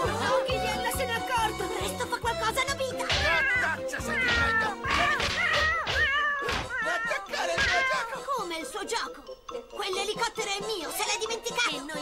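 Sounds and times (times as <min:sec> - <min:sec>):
lively background music: 0:00.0 - 0:12.0
cartoon cat meowing and yowling: 0:03.0 - 0:08.2.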